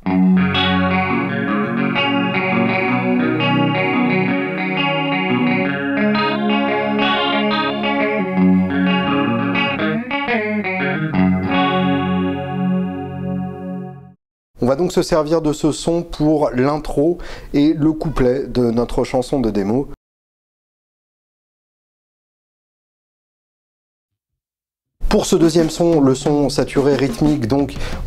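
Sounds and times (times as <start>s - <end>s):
clean electric guitar: 0.0s - 14.2s.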